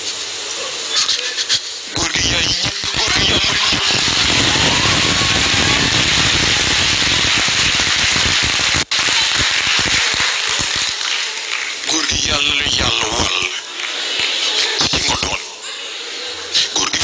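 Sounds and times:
audience applause: 2.7 - 15.6.

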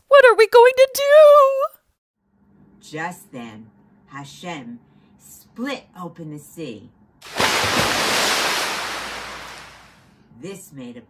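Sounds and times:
rushing surf-like water: 7.2 - 10.0.

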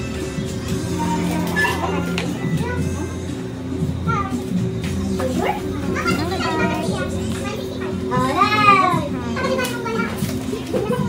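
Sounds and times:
people chattering: 0.0 - 11.0
children's high voices: 5.4 - 11.0.

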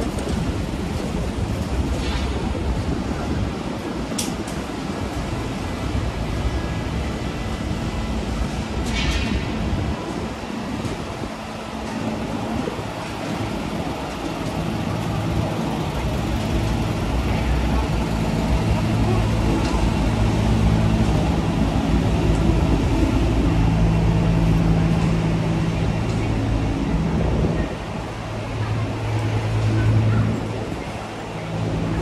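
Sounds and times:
street traffic: 0.0 - 32.0
vehicle engine idling: 11.4 - 32.0.

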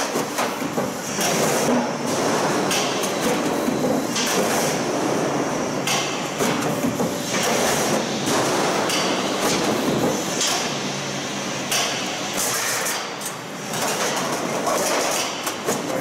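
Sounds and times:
roll forming machine clatter: 0.0 - 11.0, 11.7 - 16.0.

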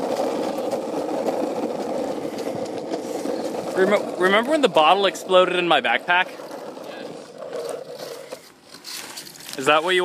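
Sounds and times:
longboard wheels rolling on concrete: 0.0 - 10.0.

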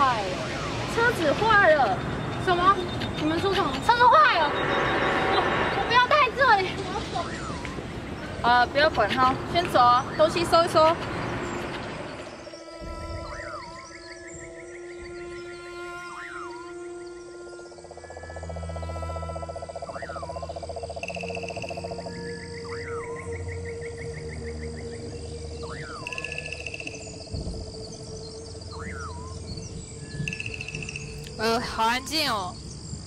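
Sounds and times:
frogs calling: 0.0 - 33.0
insects calling: 0.0 - 33.0
low drone: 0.0 - 33.0
high ringing tones: 1.0 - 8.4, 12.3 - 23.7.

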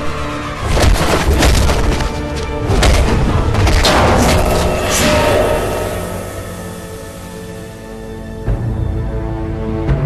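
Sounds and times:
dramatic musical score: 0.0 - 10.0.

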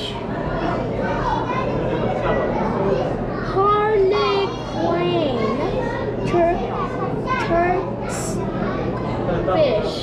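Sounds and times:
voices chattering: 0.0 - 10.0
children talking and calling out: 0.1 - 10.0.

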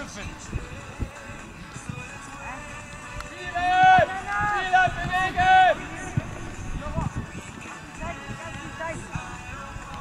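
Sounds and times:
young footballers shouting: 3.2 - 7.0.

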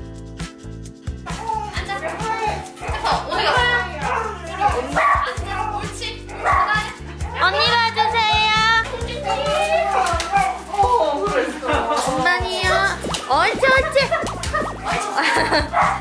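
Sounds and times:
background music low notes: 0.0 - 16.0.

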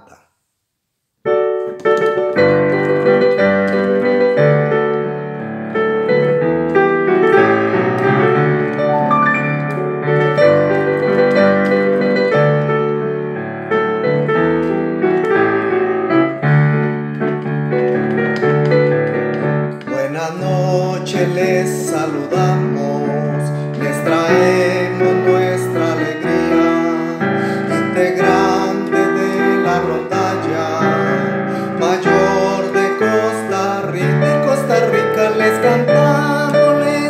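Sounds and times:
piano chords: 1.2 - 37.0
person singing: 19.7 - 37.0.

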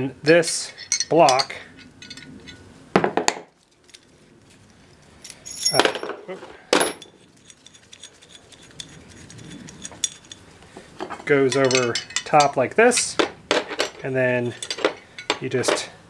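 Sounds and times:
steel tool parts clinking: 0.8 - 2.6, 5.2 - 15.9
ringing metal clanks: 5.3 - 6.1, 11.2 - 13.1.

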